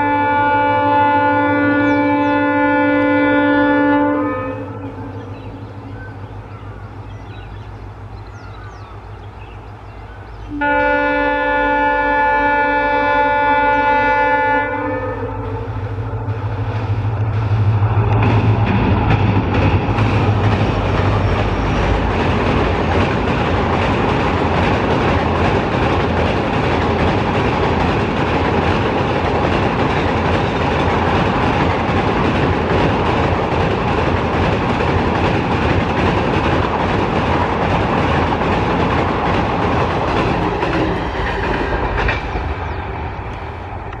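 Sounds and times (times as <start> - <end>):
locomotive horn: 0.0 - 5.3, 10.5 - 18.2
train passing over bridge: 0.0 - 44.0
wheels clattering over rails: 18.0 - 42.8.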